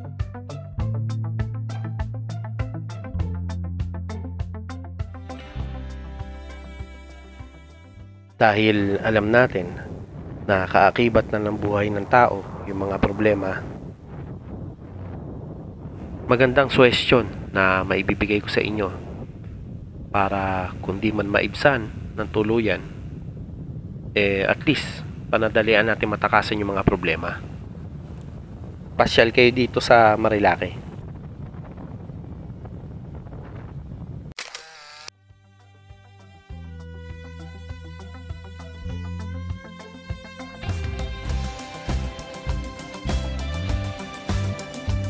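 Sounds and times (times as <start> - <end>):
background music: 0.0 - 9.2, 35.2 - 45.0
wind buffeting microphone: 8.4 - 34.4
camera shutter sound effect: 34.4 - 35.1.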